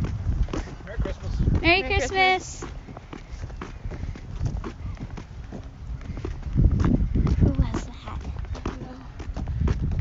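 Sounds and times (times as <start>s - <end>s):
footsteps of people walking: 0.0s - 10.0s
wind rumbling on microphone: 0.0s - 10.0s.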